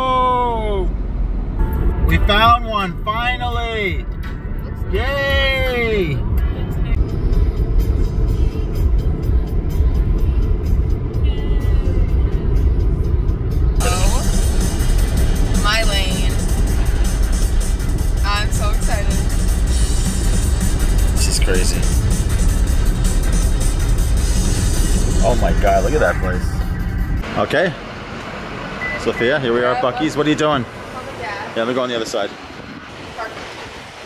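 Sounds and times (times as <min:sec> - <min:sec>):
car road rumble: 0:00.0 - 0:34.0
music: 0:04.0 - 0:27.2.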